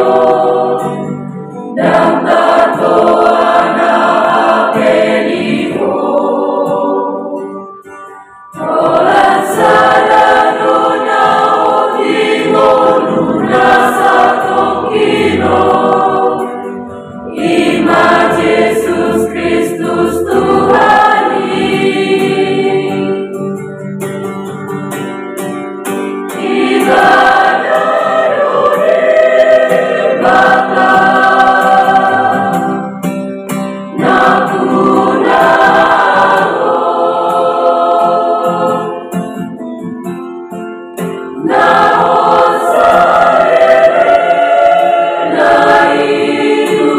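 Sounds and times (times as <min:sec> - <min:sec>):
choir singing a hymn: 0:00.0 - 0:07.8, 0:08.4 - 0:23.7, 0:26.3 - 0:33.2, 0:33.8 - 0:39.7, 0:41.3 - 0:46.9.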